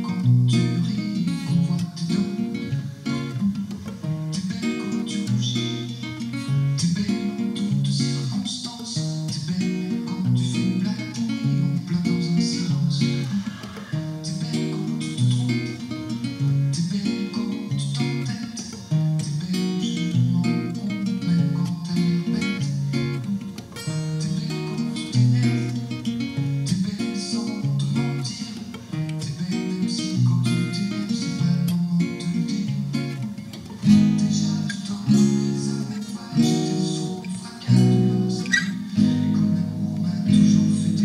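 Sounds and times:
fingerpicked acoustic guitar: 0.0 - 41.0.

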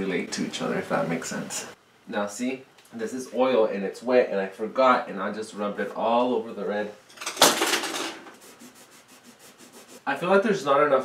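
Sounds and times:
cloth rubbing across canvas: 8.3 - 10.1.

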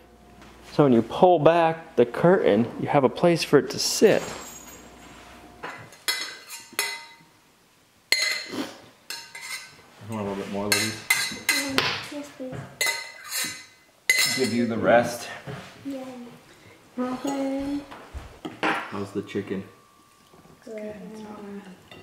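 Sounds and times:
forks clinking on plates: 5.6 - 7.2, 8.1 - 8.5, 9.1 - 11.8, 12.8 - 14.7.

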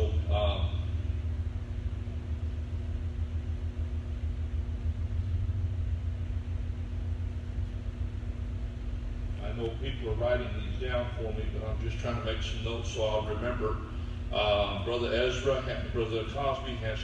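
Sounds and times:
faint constant hum: 0.0 - 17.0
low room rumble: 0.0 - 17.0.

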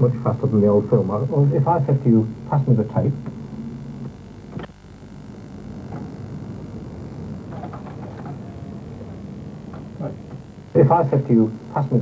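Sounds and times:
editing equipment humming: 0.0 - 12.0.

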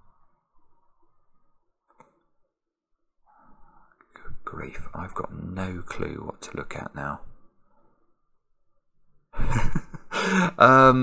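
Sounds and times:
man sighing: 10.2 - 10.6.

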